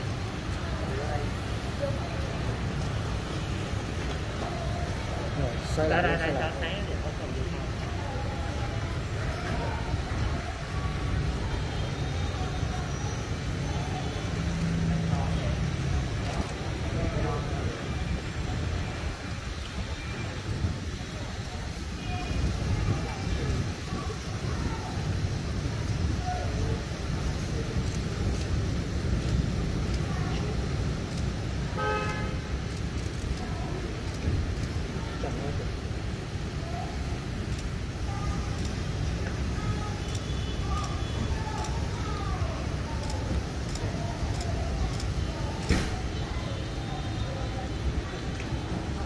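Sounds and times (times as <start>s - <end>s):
city traffic rumble: 0.0s - 49.0s
vehicle horn toot: 31.8s - 32.3s.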